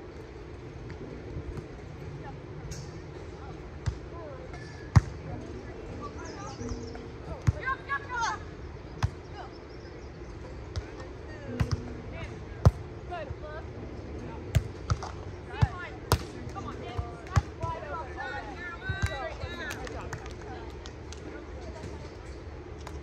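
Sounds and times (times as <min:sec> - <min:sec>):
volleyball being hit: 0:14.6 - 0:17.8.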